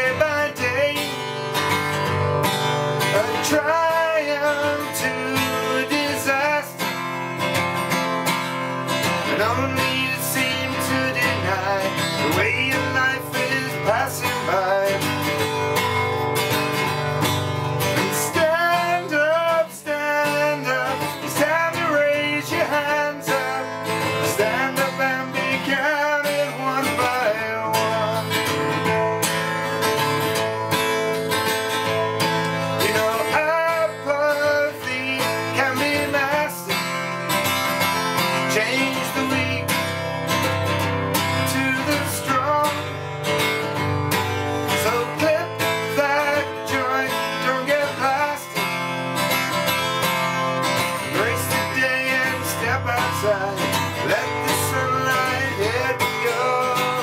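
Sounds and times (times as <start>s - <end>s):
man singing: 0.0s - 17.0s, 17.6s - 57.0s
strummed acoustic guitar: 0.0s - 57.0s.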